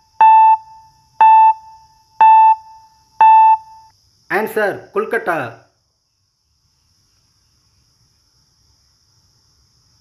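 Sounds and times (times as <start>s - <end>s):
countdown timer beeps: 0.2s - 3.9s.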